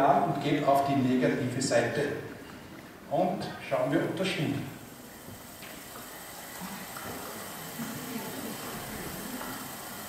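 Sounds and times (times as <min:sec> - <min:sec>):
hand-cranked machine whirring: 0:04.2 - 0:10.0.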